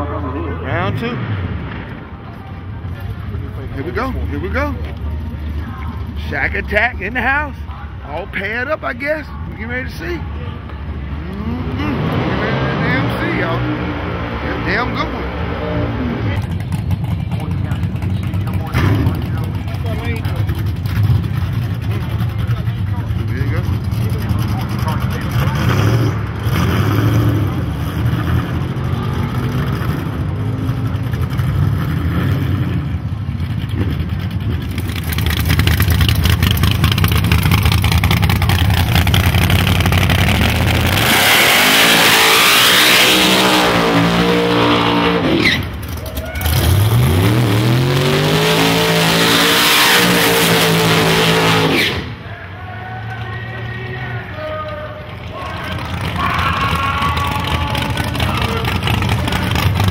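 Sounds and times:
race car engines revving: 0.0s - 59.9s.

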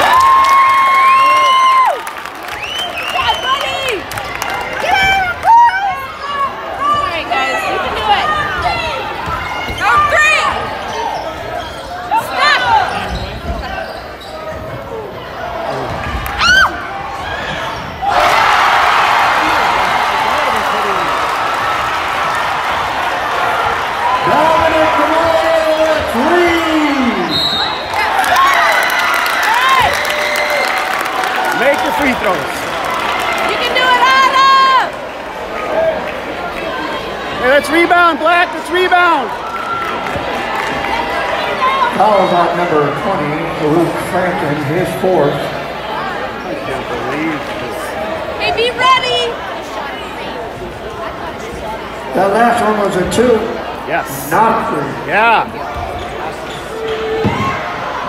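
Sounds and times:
sneakers squeaking: 8.4s - 18.2s, 55.6s - 57.9s
spectators shouting: 15.4s - 36.1s.

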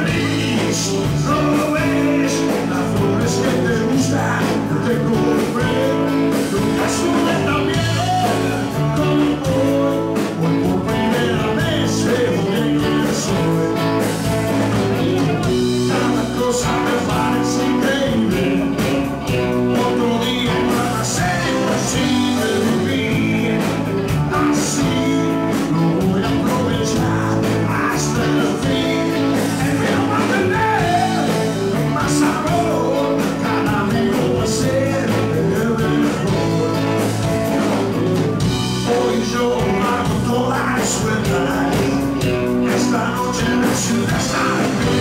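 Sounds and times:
drums: 0.0s - 45.0s
electric guitars: 0.0s - 45.0s
man singing: 0.0s - 45.0s.

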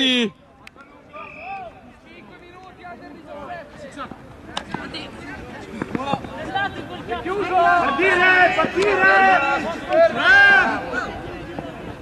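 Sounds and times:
faint shouts and chatter: 0.0s - 12.0s.

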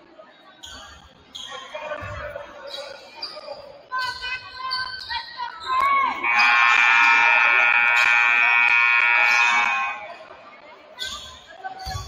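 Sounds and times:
scoreboard buzzer blast: 6.2s - 10.1s.

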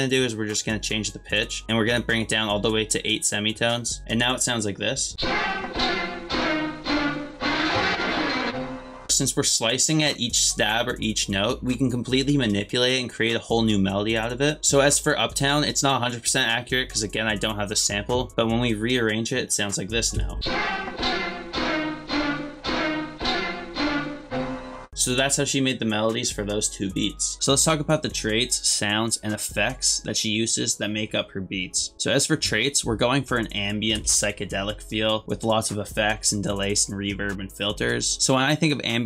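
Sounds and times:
sustained chord stabs: 5.2s - 9.2s, 20.3s - 25.2s.

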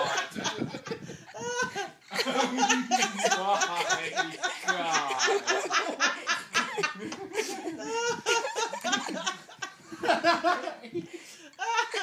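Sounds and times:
people laughing hard: 0.0s - 12.0s.

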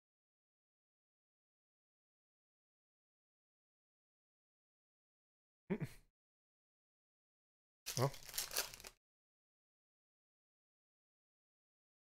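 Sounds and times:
foil wrapper crinkling and tearing: 7.9s - 9.0s.

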